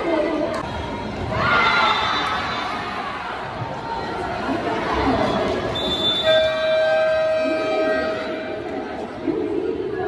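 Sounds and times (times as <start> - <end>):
crowd chatter: 0.0 - 10.0
arena buzzer horn: 5.8 - 8.5.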